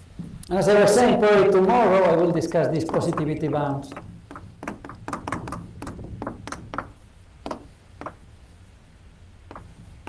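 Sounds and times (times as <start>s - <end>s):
chalk tapping and scraping on chalkboard: 2.7s - 8.2s, 9.5s - 10.0s.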